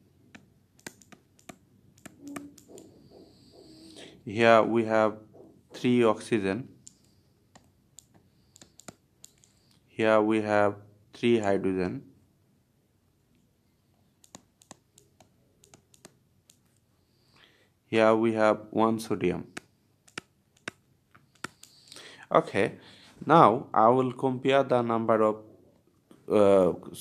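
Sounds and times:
stylus clicks and taps on tablet: 0.2s - 4.0s, 6.8s - 9.7s, 14.2s - 16.8s, 19.5s - 21.9s.

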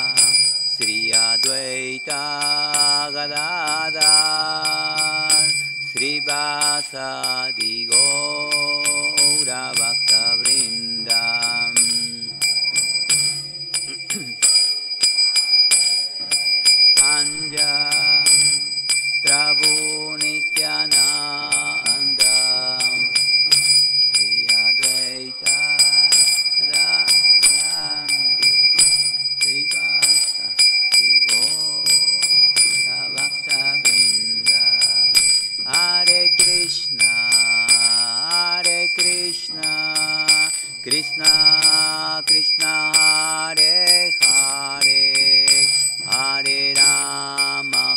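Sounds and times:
man chanting devotional singing: 0.0s - 47.9s.

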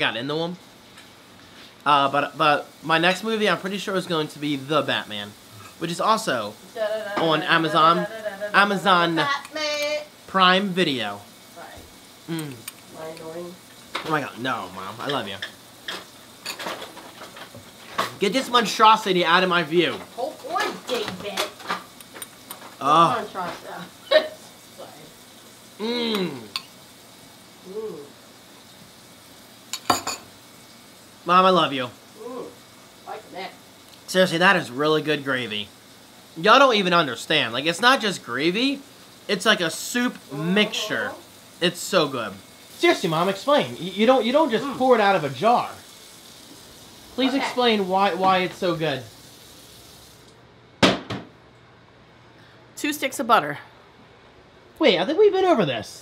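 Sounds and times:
kitchen tap running: 0.0s - 27.7s, 28.3s - 51.3s
faint room hiss: 0.0s - 56.0s
man humming: 12.3s - 12.7s, 25.8s - 26.6s, 27.6s - 28.2s.

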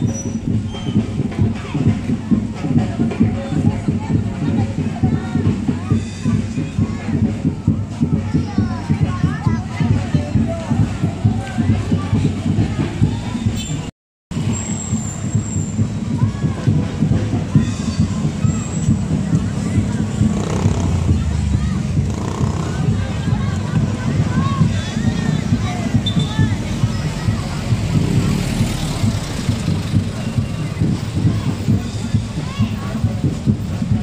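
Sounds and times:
motorcycle engines running: 14.4s - 34.0s
truck engine driving past: 26.6s - 31.9s.

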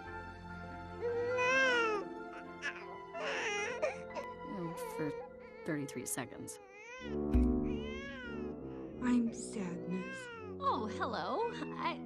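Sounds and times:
soft film-score music: 0.0s - 12.0s.

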